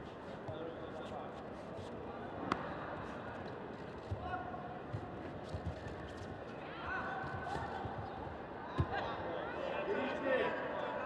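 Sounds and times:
murmur of hall: 0.0 - 11.0.

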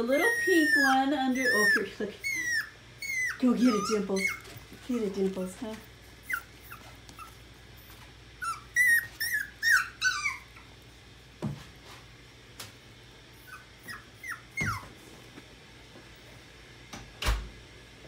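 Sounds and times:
puppies whimpering: 0.0 - 4.8, 6.2 - 10.7, 13.4 - 14.9.

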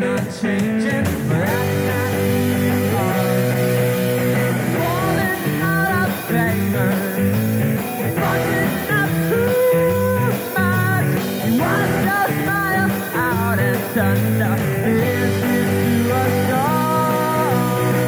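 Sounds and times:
drum kit: 0.0 - 18.0
electric bass: 0.0 - 18.0
electric guitars: 0.0 - 18.0
man singing lead vocals: 0.0 - 18.0.

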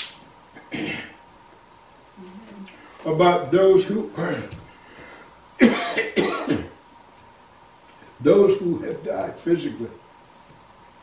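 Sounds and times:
man coughing: 0.6 - 1.2, 5.6 - 6.8.

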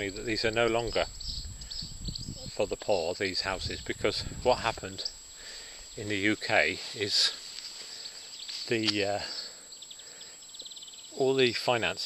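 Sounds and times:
insect chirping in grass: 0.0 - 12.0
man saying uh: 2.5 - 5.1, 6.0 - 7.4, 8.7 - 9.5.

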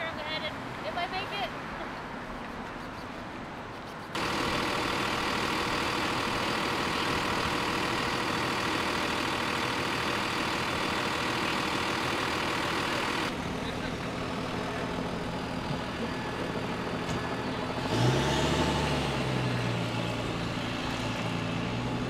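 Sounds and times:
truck engine running: 4.1 - 22.0.

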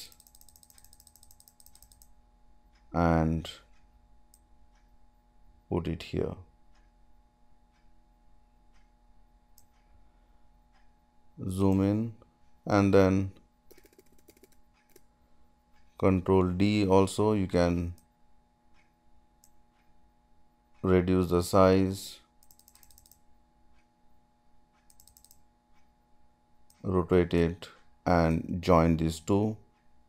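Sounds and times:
computer mouse click: 0.0 - 2.1, 13.7 - 15.1, 22.4 - 23.2, 24.8 - 25.9
keyboard keystrokes: 0.0 - 2.1, 13.7 - 15.0, 24.9 - 25.4
rapid faint ticking: 0.0 - 2.1
low steady hum: 0.0 - 30.0.

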